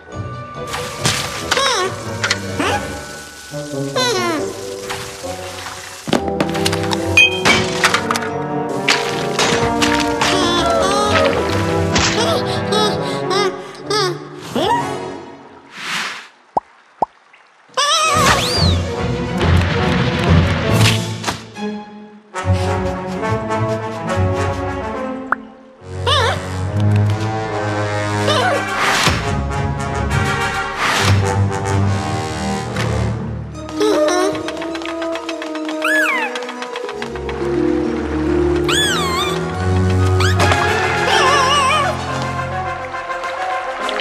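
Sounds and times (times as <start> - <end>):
cartoon background music: 0.0 - 15.3, 17.8 - 44.0
squeaky creature calls: 17.8 - 18.6, 38.7 - 39.4, 40.2 - 42.0.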